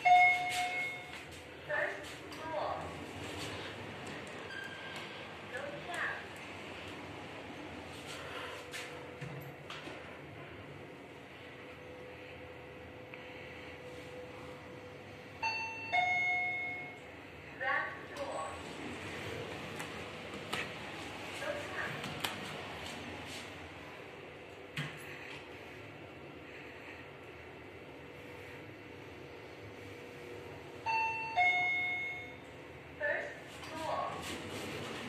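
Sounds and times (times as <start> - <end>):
elevator chime two falling notes: 0.0 - 1.2, 15.4 - 17.0, 30.8 - 32.4
faint steady hum: 0.0 - 33.7.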